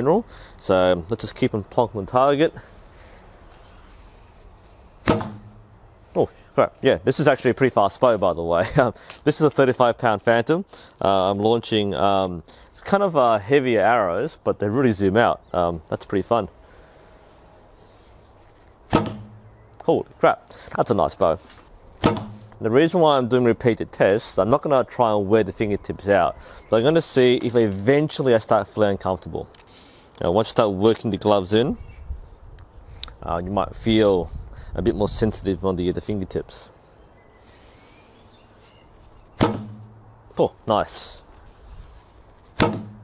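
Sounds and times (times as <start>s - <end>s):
faint outdoor background noise: 0.0s - 43.0s
bow string snapping: 5.0s - 5.7s, 18.9s - 19.9s.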